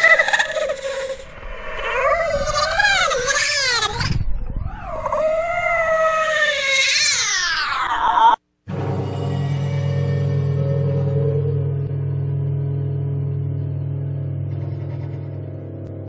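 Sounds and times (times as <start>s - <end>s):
wailing creature cry: 0.0s - 8.4s.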